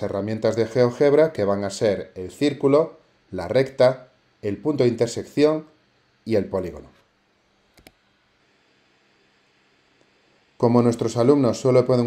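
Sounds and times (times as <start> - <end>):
computer mouse clicks: 7.7 - 8.0.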